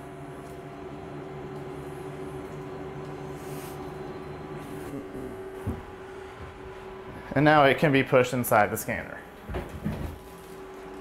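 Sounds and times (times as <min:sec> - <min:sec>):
electric lift motor humming: 0:00.0 - 0:11.0.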